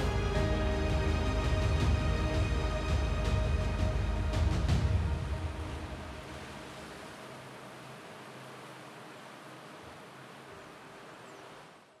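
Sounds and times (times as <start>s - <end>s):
soft wash of noise: 0.0s - 12.0s.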